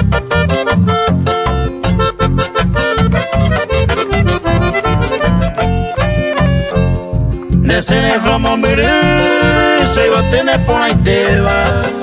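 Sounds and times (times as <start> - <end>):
accordion melody: 0.0 - 12.0
pulsing bass beat: 0.1 - 9.2.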